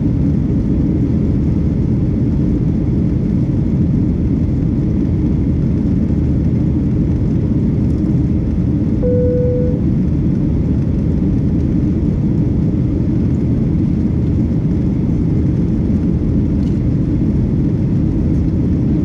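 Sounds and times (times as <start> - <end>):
airliner cabin rumble: 0.1 - 19.0
short single tone: 9.0 - 9.9.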